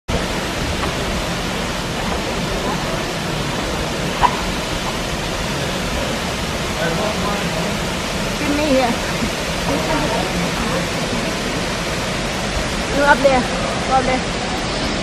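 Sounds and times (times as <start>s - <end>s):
waterfall rushing into pool: 0.1s - 15.0s
faint voices of people: 1.8s - 11.9s.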